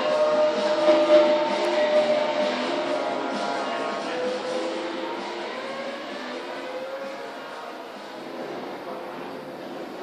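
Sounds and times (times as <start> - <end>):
race car sound effect over speakers: 0.0 - 10.0.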